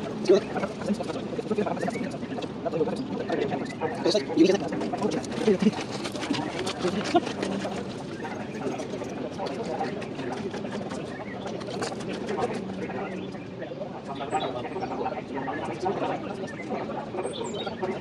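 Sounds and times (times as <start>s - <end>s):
indistinct conversation: 0.0s - 18.0s.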